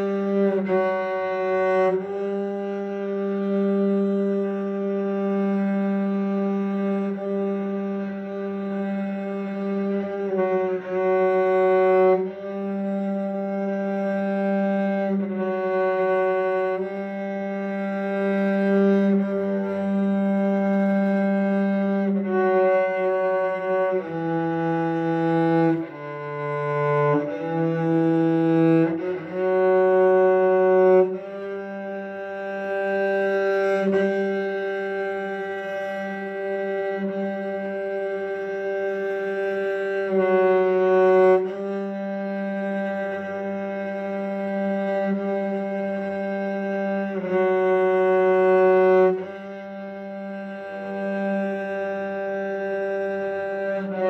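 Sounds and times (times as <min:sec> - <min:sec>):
cello long bow strokes: 0:00.0 - 0:54.0.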